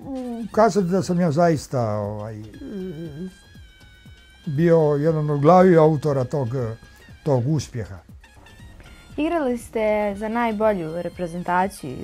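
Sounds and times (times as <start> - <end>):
man humming hesitantly: 0.0 - 0.6, 2.4 - 3.4.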